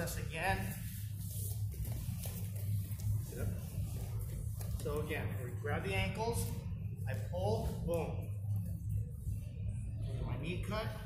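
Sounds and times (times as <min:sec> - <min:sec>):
people shuffling on mat: 0:00.0 - 0:10.6
low hum: 0:00.0 - 0:11.0.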